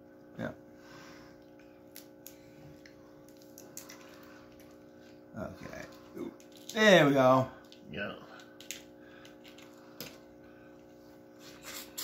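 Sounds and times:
low background hum: 0.0s - 12.0s
crawfish shells cracking and squishing: 1.6s - 10.2s.

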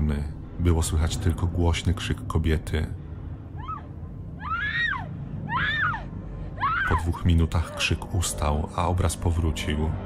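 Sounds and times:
woman screaming: 3.6s - 7.0s.

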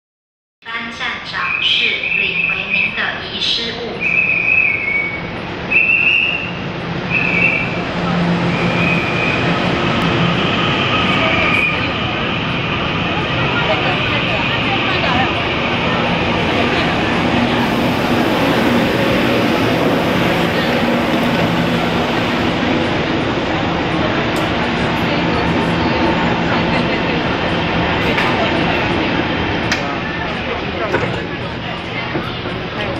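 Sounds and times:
train rolling to a stop: 4.0s - 32.9s.

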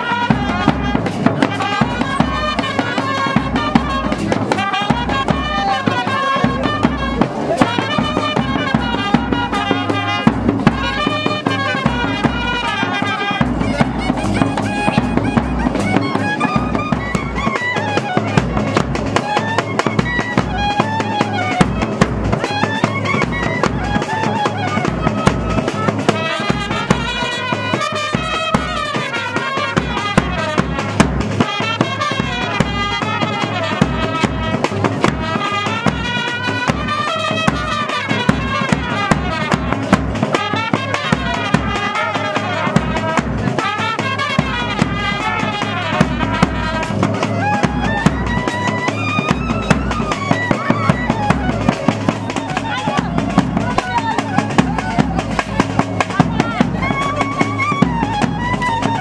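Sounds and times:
brass horn melody: 0.0s - 59.0s
driving drum beat: 0.0s - 59.0s.

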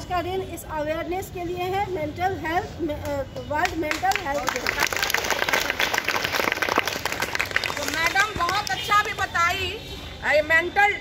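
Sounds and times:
children clapping: 3.6s - 9.2s.

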